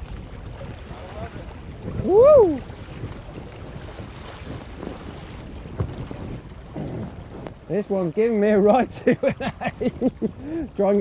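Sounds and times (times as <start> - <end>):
river rushing: 0.0 - 5.4
wind buffeting microphone: 0.0 - 11.0.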